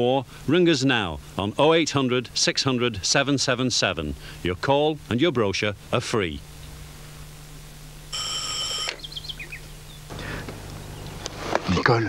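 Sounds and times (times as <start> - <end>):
low hum: 1.1 - 11.7
birds chirping: 6.4 - 12.0
telephone ringing: 8.1 - 9.0.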